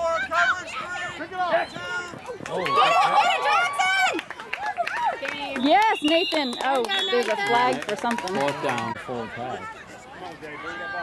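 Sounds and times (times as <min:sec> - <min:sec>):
voices calling and shouting: 0:00.0 - 0:11.0.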